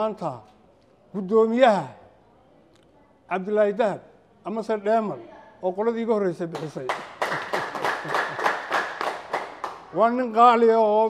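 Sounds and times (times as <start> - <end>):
audience clapping rhythmically: 6.5 - 10.0.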